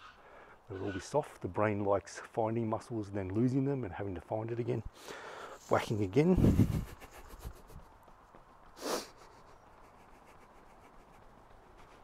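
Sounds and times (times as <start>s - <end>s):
faint background hiss: 0.0s - 12.0s
faint rustles: 4.9s - 12.0s.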